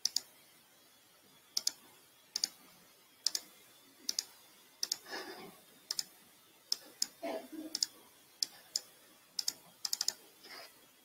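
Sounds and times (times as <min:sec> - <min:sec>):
keyboard and mouse clicks: 0:00.0 - 0:00.3, 0:01.6 - 0:01.8, 0:02.4 - 0:02.6, 0:03.2 - 0:03.5, 0:04.1 - 0:05.0, 0:05.9 - 0:06.1, 0:06.7 - 0:10.2.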